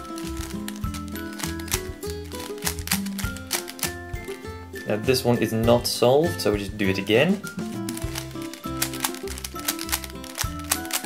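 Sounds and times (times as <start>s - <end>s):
plastic puzzle clicks: 0.0s - 4.4s, 7.8s - 11.0s
background music: 0.0s - 11.0s.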